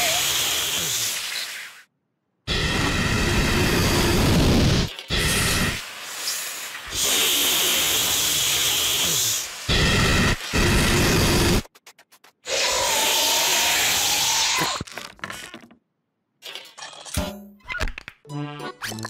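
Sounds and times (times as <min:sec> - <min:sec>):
cartoon spraying hisses: 0:00.0 - 0:01.8, 0:05.8 - 0:09.7, 0:12.5 - 0:14.7.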